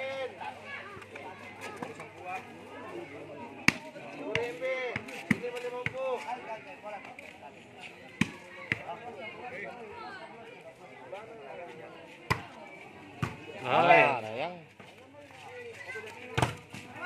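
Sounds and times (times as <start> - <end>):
voices of players and onlookers: 0.0 - 17.0
volleyball being hit: 3.6 - 6.0.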